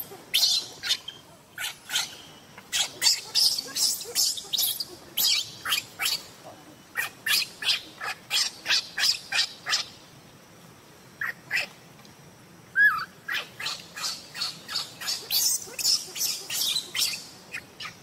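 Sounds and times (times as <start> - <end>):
baby monkey high-pitched cries: 0.4 - 6.3, 12.8 - 17.2.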